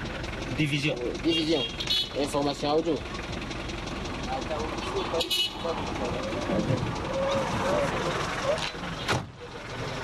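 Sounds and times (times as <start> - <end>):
faint voices outside: 0.0 - 10.0.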